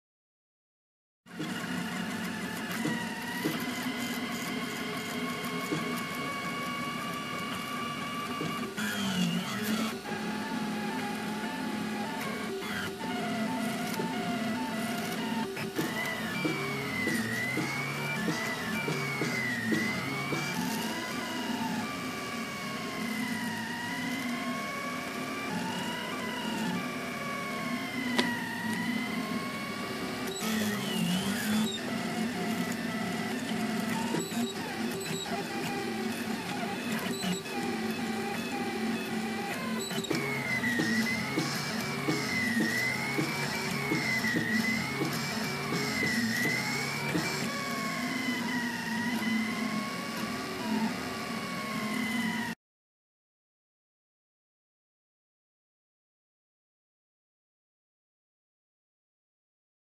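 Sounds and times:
stepper motors whining: 0:01.3 - 0:52.6.

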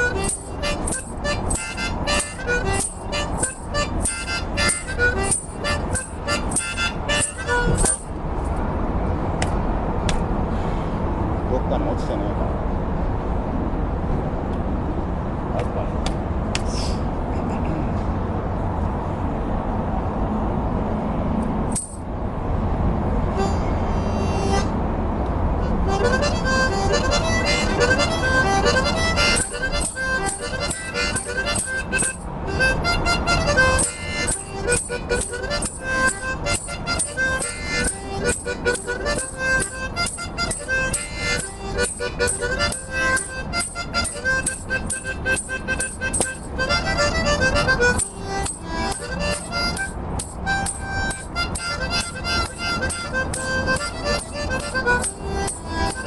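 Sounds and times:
harmonica rhythmic run of notes: 0:00.0 - 0:08.8, 0:21.7 - 0:22.1, 0:23.3 - 0:56.0
low background rumble: 0:00.0 - 0:43.3.

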